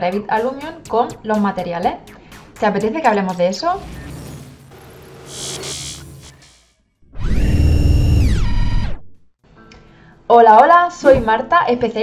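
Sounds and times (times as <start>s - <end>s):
buzzing electronic tone: 3.6s - 9.2s.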